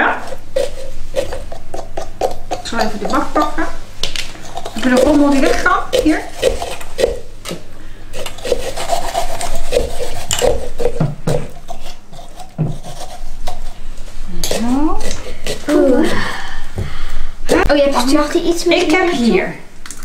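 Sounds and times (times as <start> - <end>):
saws rasping against pumpkin: 4.8 - 7.2, 8.1 - 13.8.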